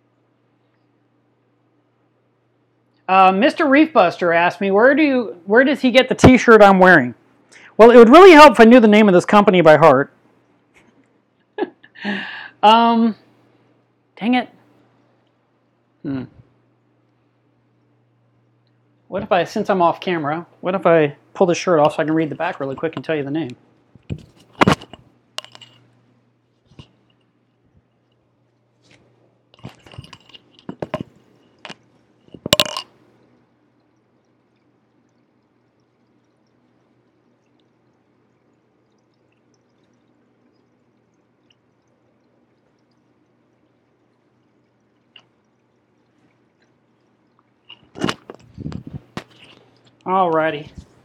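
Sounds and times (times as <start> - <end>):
faint low hum: 0.0 - 51.0
sharp clicks and knocks: 24.0 - 25.8, 29.5 - 32.9.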